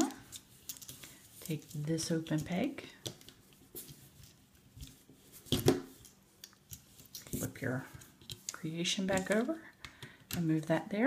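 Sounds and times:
rubber bands rustling and clicking: 0.0 - 10.9.

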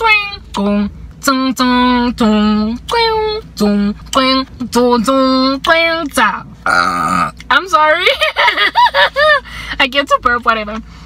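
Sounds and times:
woman singing: 0.0 - 6.5
woman burping: 6.7 - 7.4.

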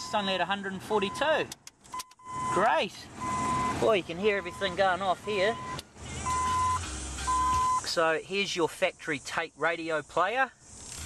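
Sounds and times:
dashboard warning chime beeping: 1.0 - 7.9.

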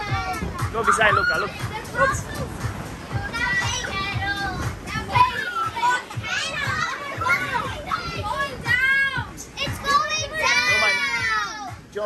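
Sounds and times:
children shouting and shrieking: 0.0 - 11.9.

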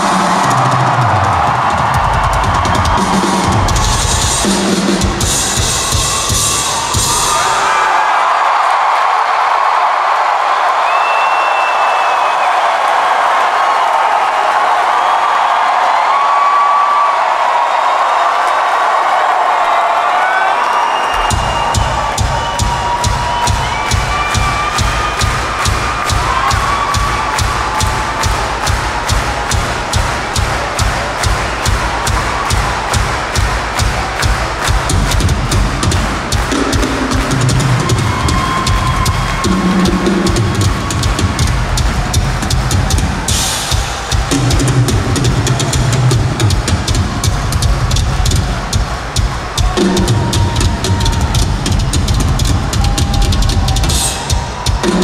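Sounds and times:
fast bass drum pattern: 0.0 - 7.5, 21.2 - 55.0
crowd cheering and whistling: 0.0 - 55.0.

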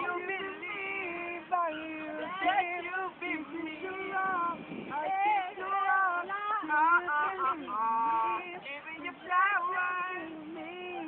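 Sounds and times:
man singing unaccompanied: 0.0 - 11.0.

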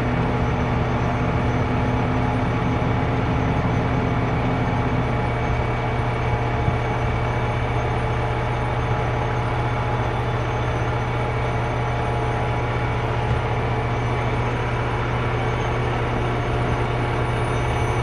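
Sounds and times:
diesel engine droning: 0.0 - 18.0.

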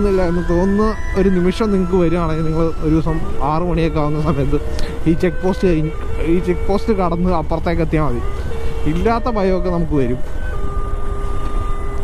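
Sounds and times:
man talking: 0.0 - 10.2.

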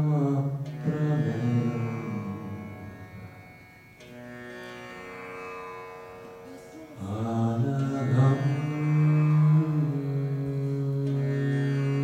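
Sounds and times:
low voice chanting: 0.0 - 3.4, 6.5 - 11.3.

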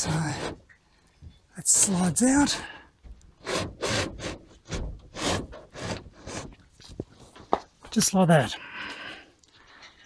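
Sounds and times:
window pane rubbing scrapes: 3.5 - 6.6.

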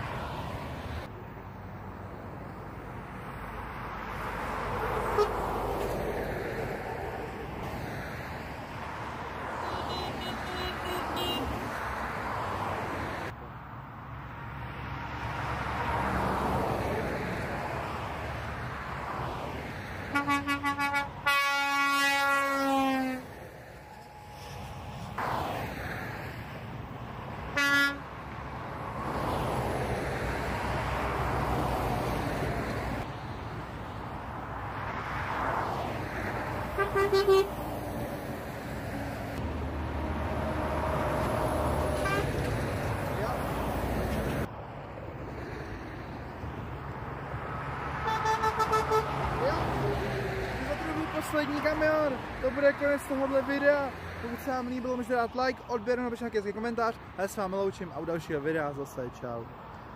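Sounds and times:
motorway traffic passing: 0.0 - 59.9
truck air horn toots and blast: 4.8 - 5.7, 9.6 - 11.7, 20.0 - 25.1, 27.5 - 28.1, 36.7 - 37.7, 41.9 - 42.5, 48.0 - 49.3, 50.3 - 51.7.

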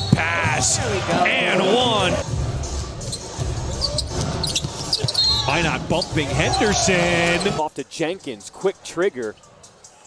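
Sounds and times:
sneaker squeaks: 3.1 - 7.6.

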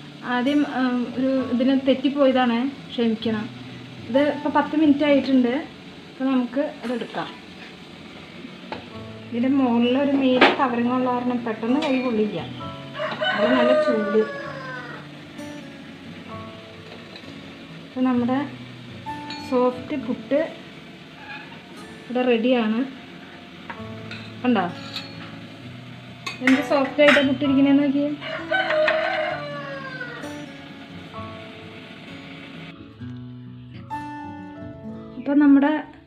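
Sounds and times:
faint background music: 0.0 - 36.0
rooster crowing: 12.8 - 15.1, 28.1 - 30.5.

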